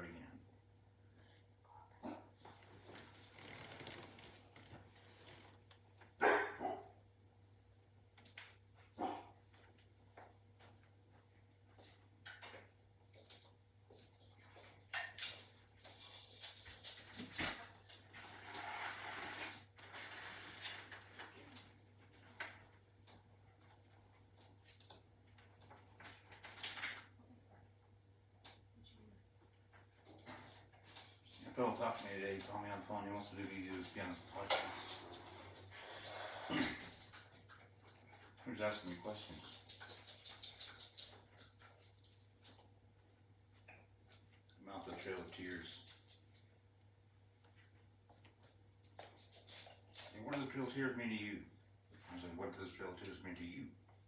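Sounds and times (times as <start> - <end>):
low electrical hum: 0.0 - 54.0
puppy barking: 6.2 - 7.0, 9.0 - 9.4.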